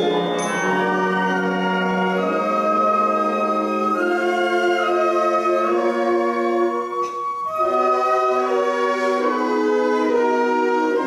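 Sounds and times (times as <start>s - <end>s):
concert band wind chords: 0.0s - 11.0s.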